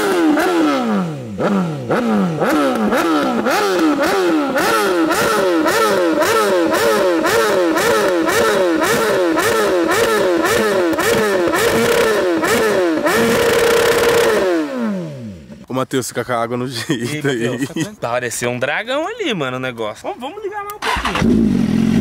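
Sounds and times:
motorcycle engine revving: 0.0s - 15.7s, 20.8s - 22.0s.

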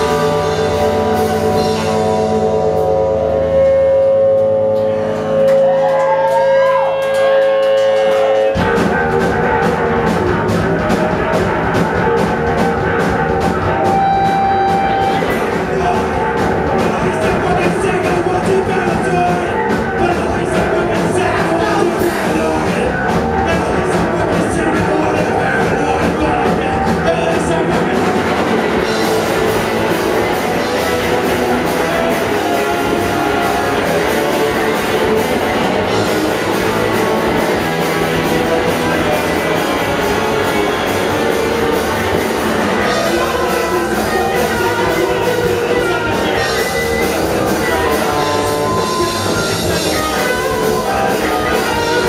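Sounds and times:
loud held guitar feedback tone: 0.0s - 11.7s, 12.6s - 15.9s, 28.2s - 52.0s
live rock band playing: 0.0s - 52.0s.

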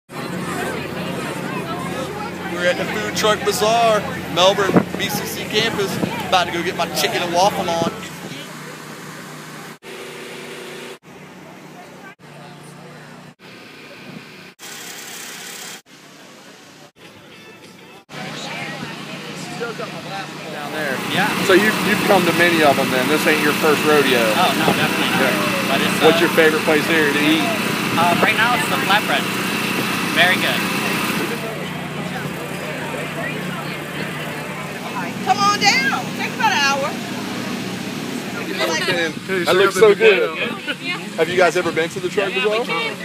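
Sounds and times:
crowd chatter: 0.1s - 9.8s, 11.3s - 14.2s, 15.9s - 43.0s
engine running: 0.1s - 16.9s, 17.6s - 43.0s
portable generator humming: 18.1s - 43.0s.

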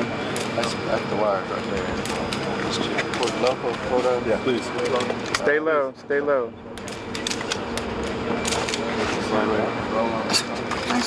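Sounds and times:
machinery humming: 0.0s - 11.0s.

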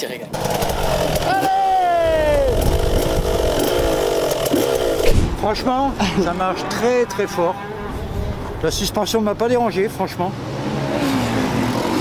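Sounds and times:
two-stroke motorbike engine: 0.3s - 6.0s.

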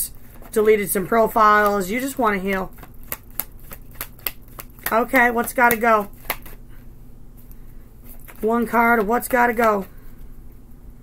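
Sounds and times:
cards being shuffled: 0.2s - 6.6s, 8.0s - 10.0s.

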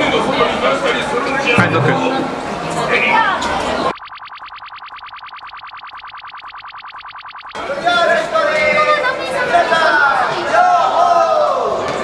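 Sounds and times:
rapid electronic pulsing: 1.6s - 8.2s.

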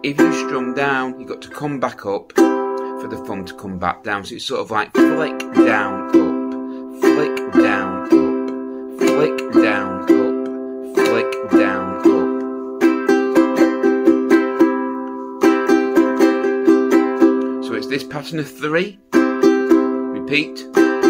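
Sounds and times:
resonator ukulele strumming: 0.0s - 21.0s.

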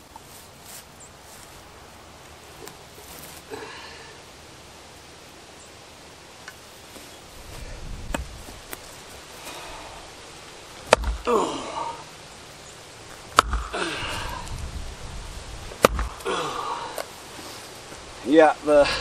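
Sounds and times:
axe striking wood: 10.9s - 11.3s, 13.3s - 13.8s, 15.8s - 16.2s
man grunting: 11.2s - 12.1s, 13.7s - 14.4s, 16.2s - 17.0s.

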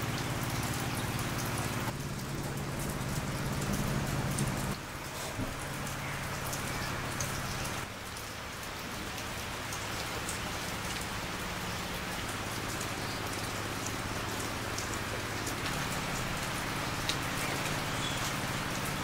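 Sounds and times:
steady rain falling: 0.0s - 19.0s.

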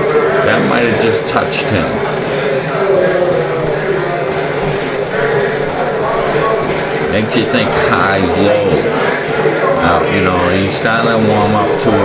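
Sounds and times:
background voices: 0.0s - 12.0s.

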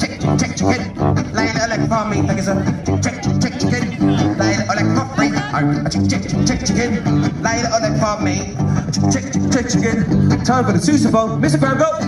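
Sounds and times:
man singing: 0.0s - 12.0s
sousaphone bass line: 0.0s - 12.0s
strummed guitar: 0.0s - 12.0s.

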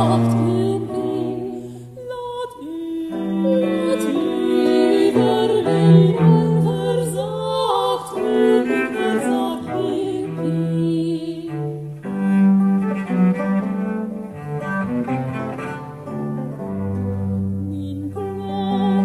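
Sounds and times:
baroque string music: 0.0s - 19.0s
cello low line: 0.0s - 19.0s.

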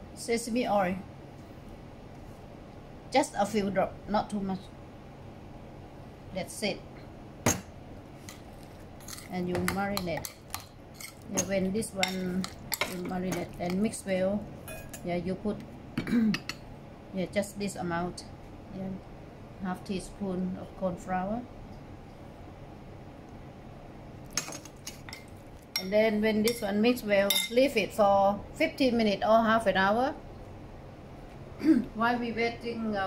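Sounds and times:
faint room hum: 0.0s - 33.0s
metal spoon clinking on bowl: 9.0s - 13.8s, 14.7s - 15.0s, 25.1s - 26.6s, 27.3s - 27.6s
kitchenware clink: 14.6s - 15.0s, 27.3s - 27.6s.

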